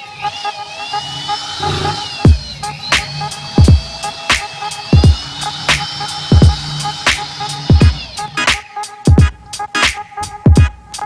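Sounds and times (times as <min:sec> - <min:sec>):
electric drill whining: 0:00.0 - 0:08.6.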